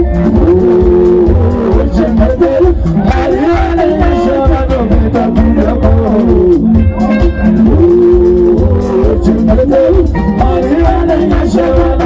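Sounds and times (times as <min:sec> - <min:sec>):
band playing live: 0:00.0 - 0:12.0
bass guitar: 0:00.0 - 0:12.0
drum kit beat: 0:00.0 - 0:12.0
sliding lead guitar notes: 0:00.0 - 0:12.0.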